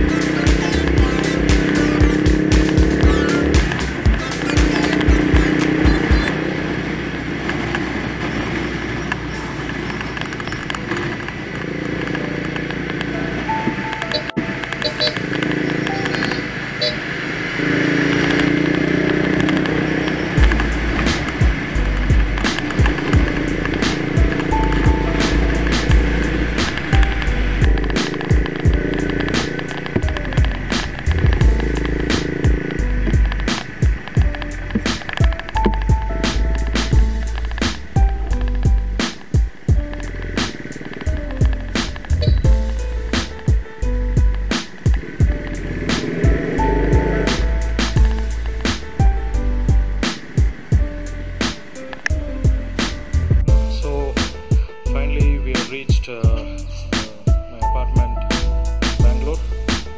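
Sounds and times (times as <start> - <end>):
deep bass line and beat: 0.0 - 6.4, 19.3 - 59.9
background music: 0.0 - 59.9.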